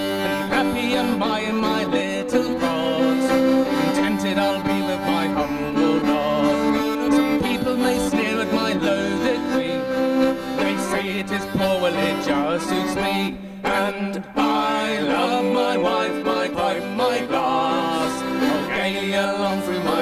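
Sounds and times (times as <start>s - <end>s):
button accordion playing: 0.0s - 20.0s
fiddle playing: 0.0s - 20.0s.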